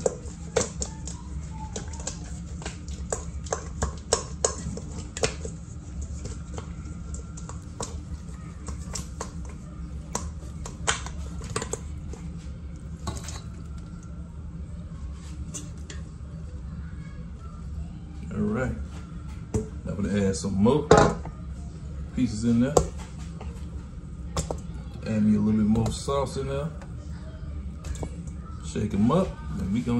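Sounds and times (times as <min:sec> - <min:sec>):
ribs clattering in a metal bowl: 0:00.0 - 0:12.3.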